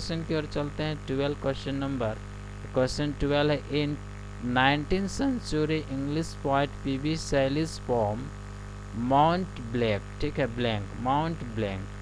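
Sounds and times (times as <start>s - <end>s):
man speaking: 0.0s - 8.3s, 8.9s - 11.9s
electrical mains hum: 0.0s - 12.0s.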